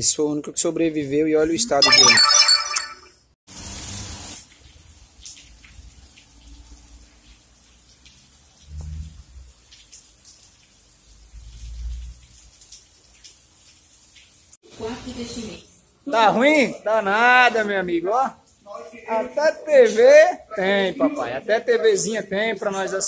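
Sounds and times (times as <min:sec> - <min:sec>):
light rain: 0:03.5 - 0:23.0
drips ticking: 0:04.5 - 0:14.6, 0:16.4 - 0:23.0.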